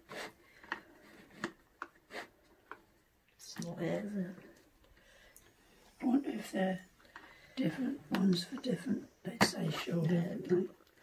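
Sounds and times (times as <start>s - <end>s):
plastic scraping: 0.0s - 2.8s.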